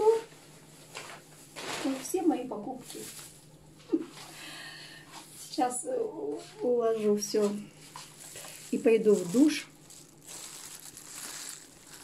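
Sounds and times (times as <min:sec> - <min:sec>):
plastic bags rustling: 0:00.0 - 0:03.5, 0:07.0 - 0:12.0.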